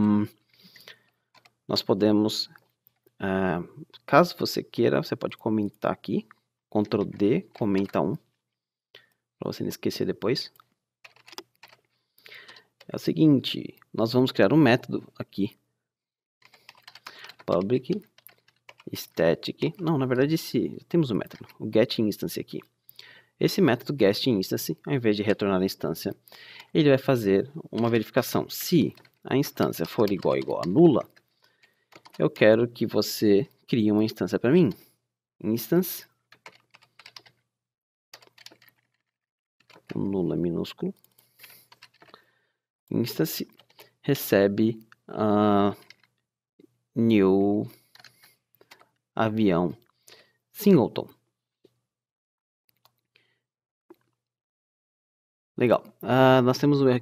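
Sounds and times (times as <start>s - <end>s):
computer keyboard keystrokes: 1.4s - 1.6s, 6.8s - 8.0s, 11.0s - 11.8s, 16.4s - 18.9s, 28.9s - 31.2s, 31.9s - 32.2s, 36.3s - 37.4s, 38.2s - 38.9s, 39.6s - 40.0s, 40.9s - 42.2s, 43.5s - 43.9s, 47.9s - 48.9s.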